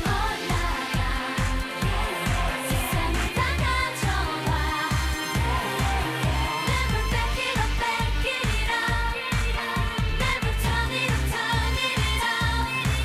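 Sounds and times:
heavy bass beat: 0:00.0 - 0:13.0
women singing dance-pop: 0:00.0 - 0:13.0.

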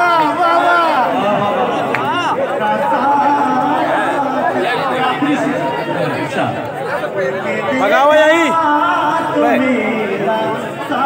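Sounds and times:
several people talking at once: 0:00.0 - 0:11.0.

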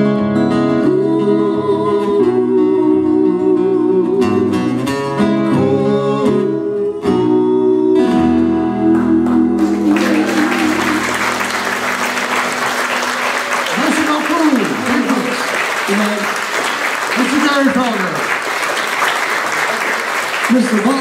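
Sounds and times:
audience applauding: 0:09.2 - 0:21.0
person speaking: 0:13.7 - 0:18.3, 0:20.5 - 0:21.0.

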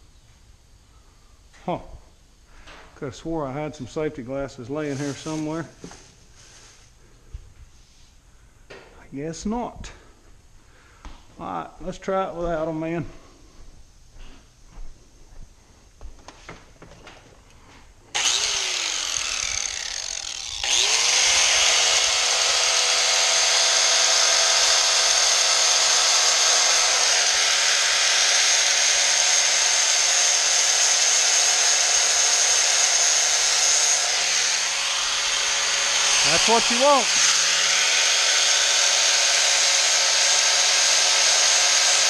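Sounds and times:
electric rotary grinder grinding: 0:18.1 - 0:42.0.

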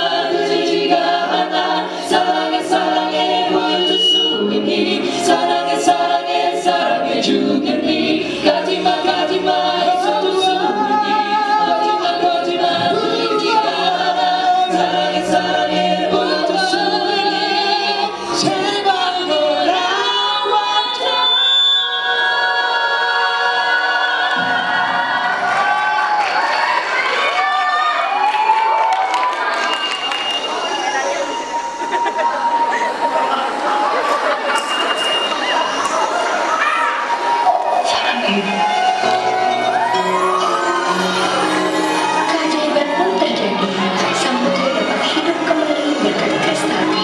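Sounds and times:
vocal group singing in harmony: 0:00.0 - 0:26.5, 0:29.7 - 0:47.0.

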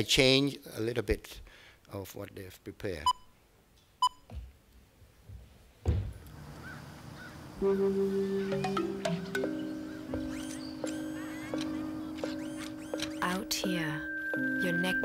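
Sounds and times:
short countdown beeps: 0:04.0 - 0:04.2, 0:12.4 - 0:15.0
low thump: 0:05.8 - 0:06.2
chime-like music over speakers: 0:13.4 - 0:15.0.

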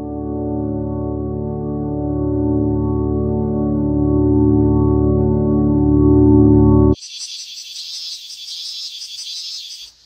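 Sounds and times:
organ-like ambient music chord: 0:00.0 - 0:07.0
pulsing insect chorus: 0:07.0 - 0:10.0.

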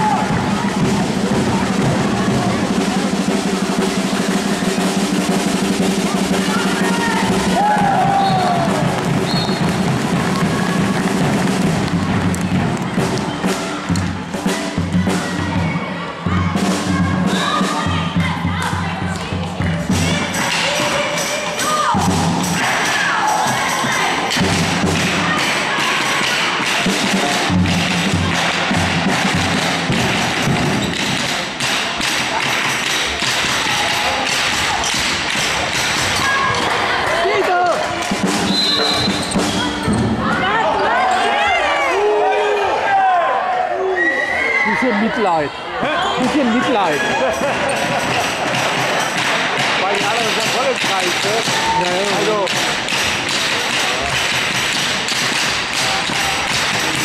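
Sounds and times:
drum beating: 0:00.0 - 0:41.8, 0:44.7 - 0:57.0
crowd shouting and cheering: 0:00.0 - 0:57.0.

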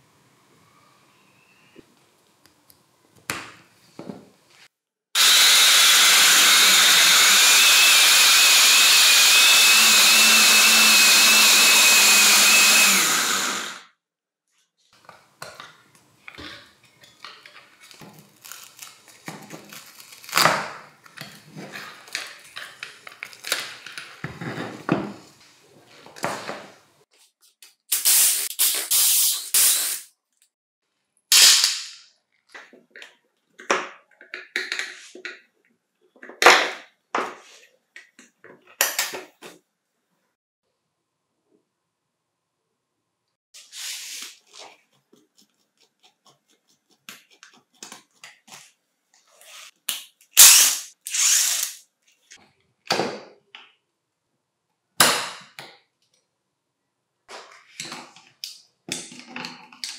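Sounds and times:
electric sheet sander whirring: 0:05.2 - 0:13.8.

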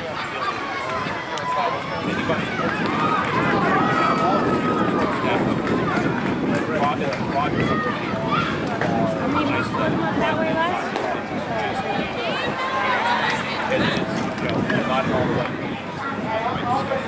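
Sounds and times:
overlapping crowd voices: 0:00.0 - 0:17.0.

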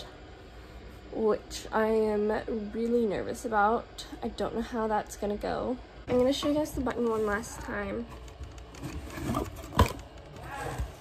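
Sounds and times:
objects rubbing and rustling: 0:06.1 - 0:11.0.

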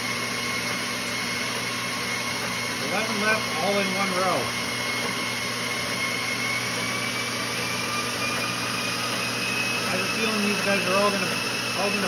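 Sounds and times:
treadmill motor whine and belt hum: 0:00.0 - 0:12.0.

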